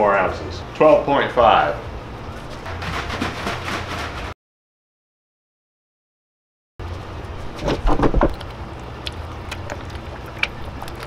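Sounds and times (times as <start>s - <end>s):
plastic jug clattering knocks: 2.7s - 4.2s
low steady hum: 6.8s - 11.0s.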